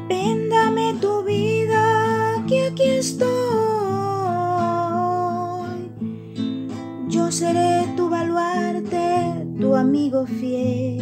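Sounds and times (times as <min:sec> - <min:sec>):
soft acoustic guitar: 0:00.0 - 0:11.0.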